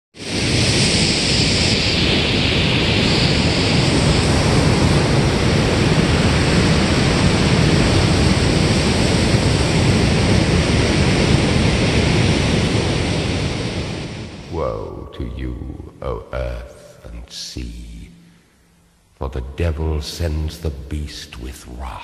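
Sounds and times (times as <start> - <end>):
steady rushing noise: 0.2 - 22.0
flickering low rumble: 13.9 - 22.0.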